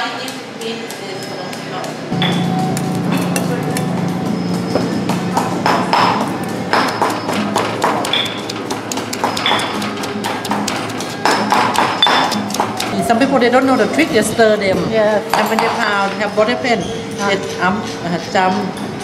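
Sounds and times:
stone pestle pounding in mortar: 0:02.1 - 0:13.0
music playing: 0:02.1 - 0:13.8.

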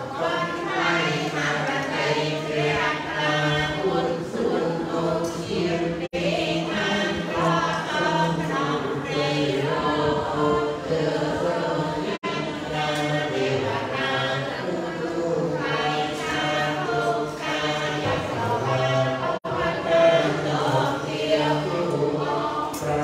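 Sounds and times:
group chanting: 0:00.0 - 0:23.0.

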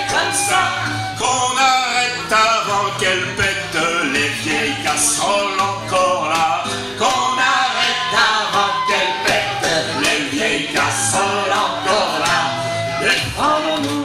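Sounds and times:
flute melody: 0:00.0 - 0:14.0
group singing: 0:00.0 - 0:14.0
hands clapping a beat: 0:00.0 - 0:14.0.

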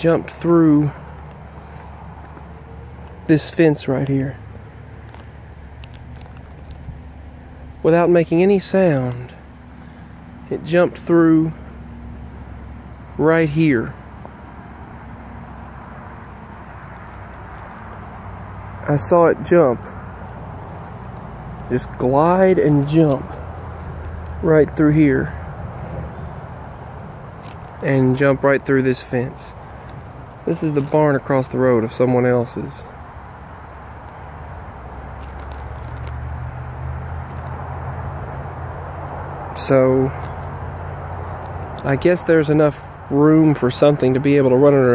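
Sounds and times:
low outdoor rumble: 0:00.0 - 0:44.9
vehicle engine hum: 0:00.0 - 0:44.9.

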